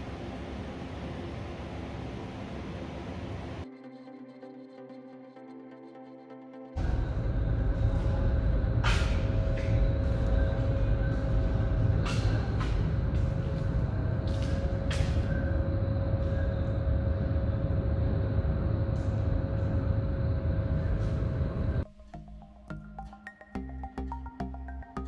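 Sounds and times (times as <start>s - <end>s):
ventilation rumble and hum: 0.0s - 3.7s, 6.8s - 23.0s.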